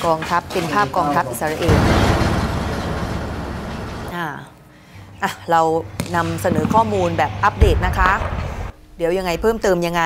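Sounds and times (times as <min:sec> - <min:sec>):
armored vehicle engine and tracks: 0:01.6 - 0:04.2.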